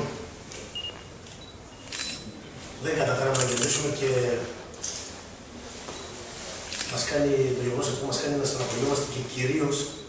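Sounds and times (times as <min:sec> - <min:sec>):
camera shutter click: 0:01.9 - 0:02.2, 0:03.3 - 0:03.8, 0:06.7 - 0:07.0
man speaking: 0:02.8 - 0:04.6, 0:06.9 - 0:10.0.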